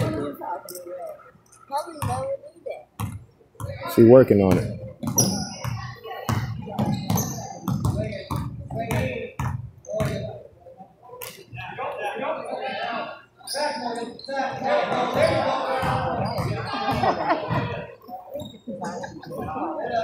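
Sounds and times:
spectators talking: 0.0 - 20.0.

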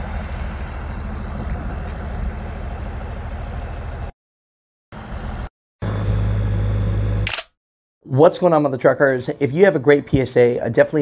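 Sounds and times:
diesel truck engine running: 0.0 - 4.1, 5.0 - 7.3.

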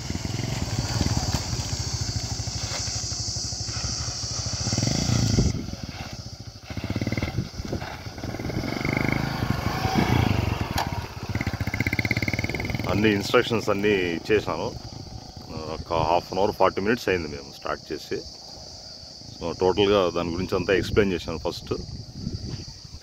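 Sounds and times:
motorcycle engine at low speed: 0.0 - 17.6, 18.2 - 23.0
high-pitched insect chirring: 0.0 - 23.0.

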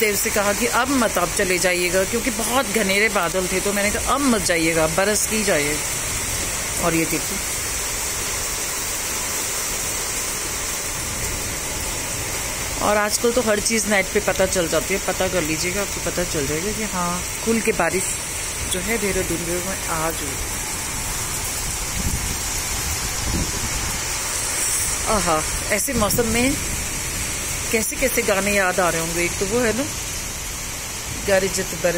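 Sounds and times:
heavy rain pouring: 0.0 - 31.9.

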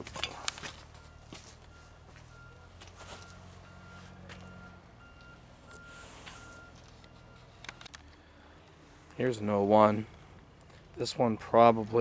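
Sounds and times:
footsteps on dirt and gravel: 0.0 - 3.4, 4.0 - 4.5
reversing alarm beeping: 0.7 - 7.6.

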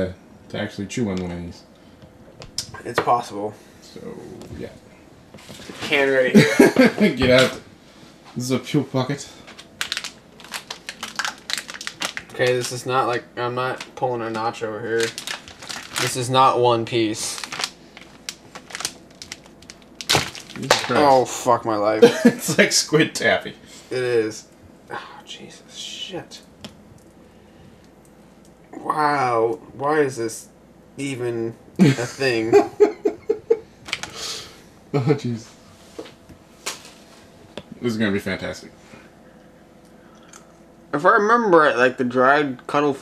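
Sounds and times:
plastic bag crinkling: 9.4 - 14.0, 14.8 - 21.2.

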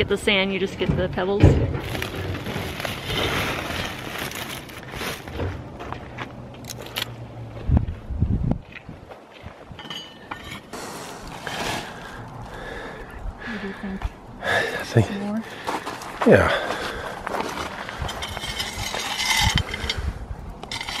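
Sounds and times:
shovel scraping gravel: 2.0 - 5.3, 10.2 - 12.2, 17.4 - 21.0.

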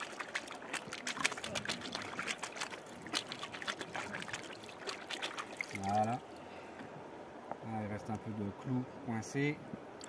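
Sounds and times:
water splashing and dripping: 0.0 - 6.4.

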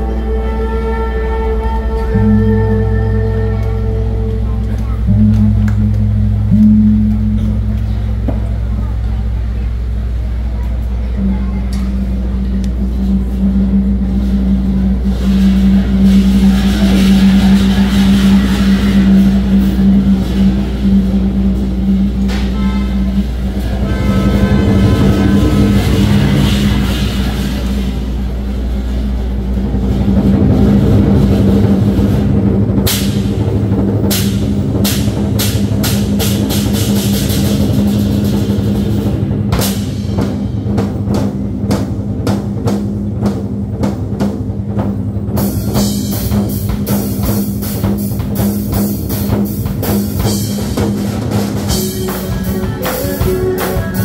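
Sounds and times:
cymbals crashing: 0.0 - 54.0
low drone: 0.0 - 54.0.

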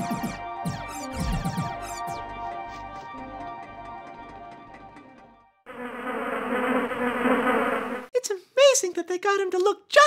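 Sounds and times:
soft music: 0.0 - 5.5
housefly buzzing: 5.7 - 8.1.

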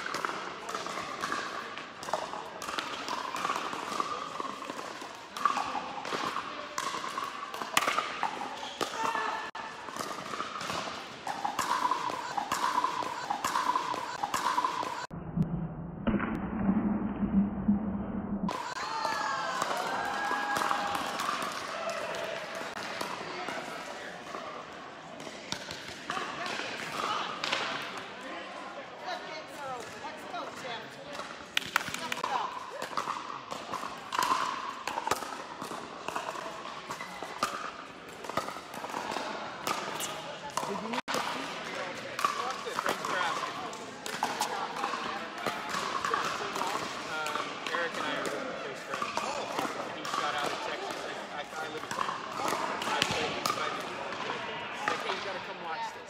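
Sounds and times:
ball bouncing on court: 0.0 - 23.7, 31.1 - 55.2.

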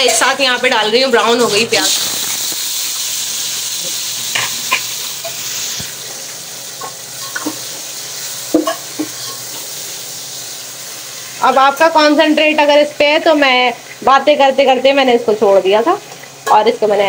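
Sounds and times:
tomatoes sizzling in hot oil: 0.0 - 17.0.

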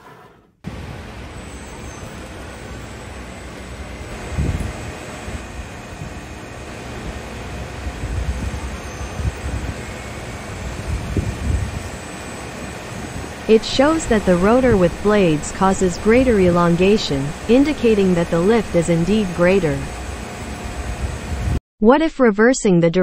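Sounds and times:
electric fans blowing: 0.7 - 21.6
wind rumble on microphone: 4.0 - 12.0, 20.6 - 21.6.

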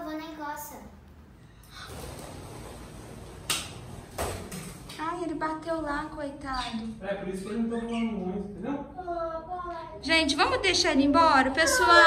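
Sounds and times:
child exclaiming: 9.0 - 10.0.

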